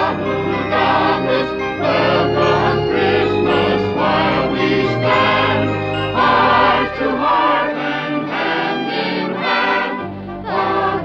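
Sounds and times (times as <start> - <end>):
choir singing: 0.0 - 11.0
orchestral accompaniment: 0.0 - 11.0.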